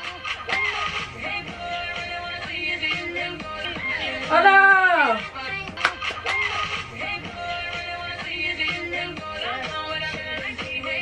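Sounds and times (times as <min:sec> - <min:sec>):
dance music: 0:00.0 - 0:11.0.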